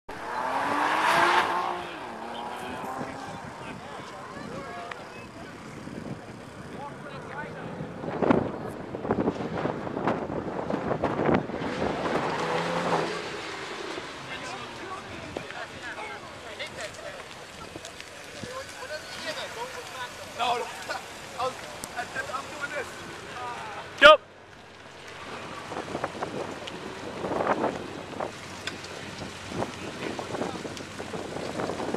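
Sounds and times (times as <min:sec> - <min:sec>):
car engine revving: 0:00.1 - 0:16.6.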